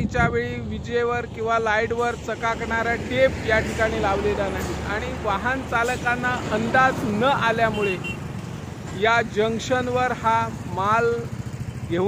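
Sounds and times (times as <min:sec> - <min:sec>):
man speaking: 0:00.0 - 0:08.2, 0:08.9 - 0:12.0
highway traffic: 0:00.0 - 0:12.0.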